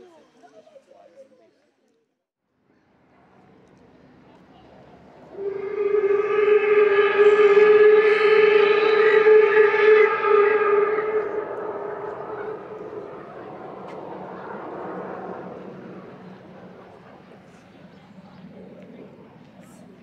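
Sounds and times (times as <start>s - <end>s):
long horn blast: 5.3s - 17.7s.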